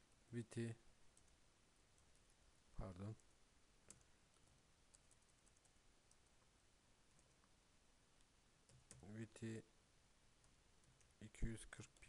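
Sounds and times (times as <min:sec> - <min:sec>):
faint keyboard clicks: 0:03.0 - 0:06.4, 0:08.2 - 0:09.1.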